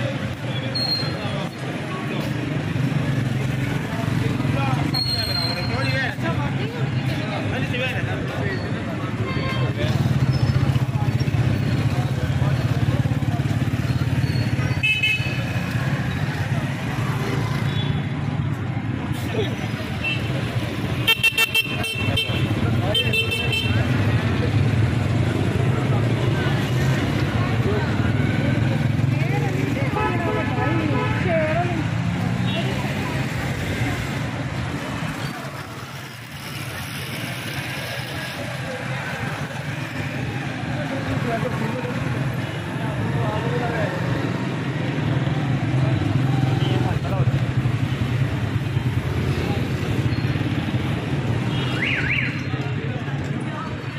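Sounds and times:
car and motorcycle engines: 0:00.0 - 0:53.9
crowd chatter: 0:00.0 - 0:53.9.

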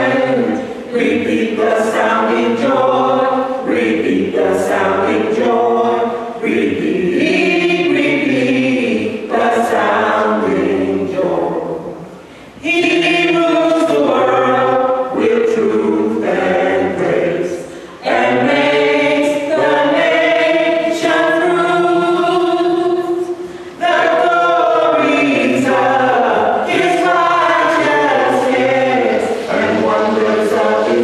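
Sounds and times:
vocal group singing unaccompanied: 0:00.0 - 0:31.0.

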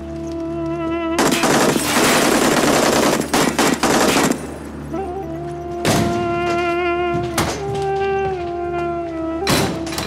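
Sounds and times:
rapid automatic gunfire: 0:01.2 - 0:04.6.

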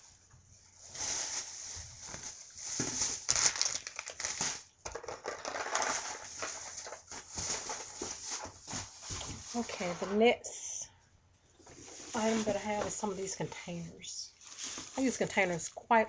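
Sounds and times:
plastic bag rustling: 0:00.0 - 0:10.3, 0:11.6 - 0:15.7.

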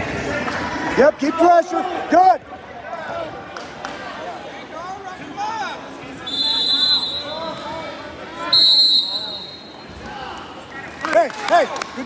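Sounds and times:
referee whistle blasts: 0:06.2 - 0:07.5, 0:08.5 - 0:09.8.

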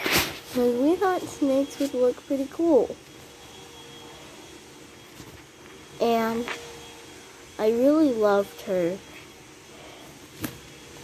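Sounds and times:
thin high tone: 0:00.6 - 0:09.2.

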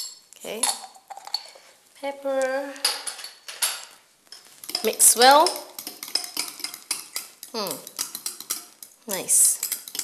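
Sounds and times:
spoon clinking on ceramic pots: 0:02.9 - 0:10.0.

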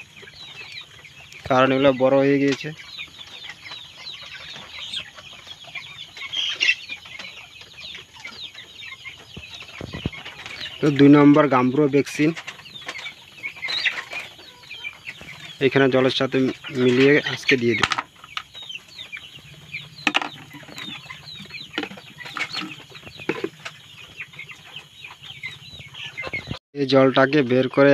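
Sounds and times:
chickens cheeping and clucking: 0:00.0 - 0:27.9
man speaking: 0:10.8 - 0:12.4, 0:15.6 - 0:17.9, 0:26.8 - 0:27.9.

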